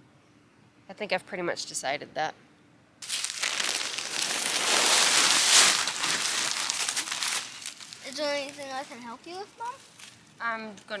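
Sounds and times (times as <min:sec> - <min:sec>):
plastic bag crinkling: 0:03.0 - 0:09.0.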